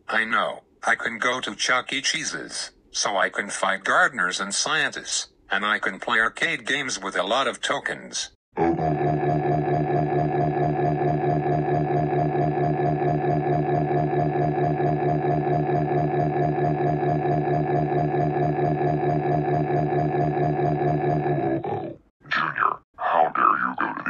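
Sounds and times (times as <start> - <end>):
buzzy pulsing electronic tone: 8.8 - 21.6.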